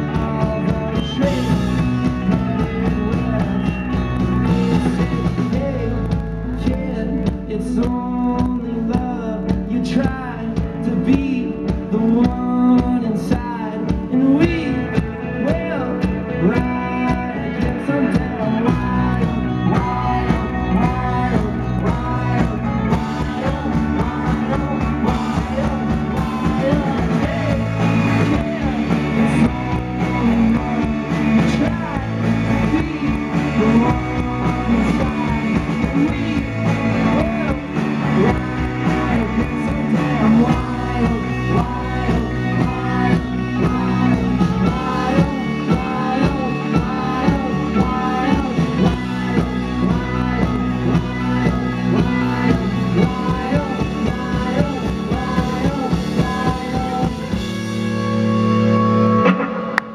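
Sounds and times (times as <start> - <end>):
bass guitar: 0.0 - 59.9
drum kit: 0.0 - 59.9
electric guitars: 0.0 - 59.9
rock band playing live: 0.0 - 59.9.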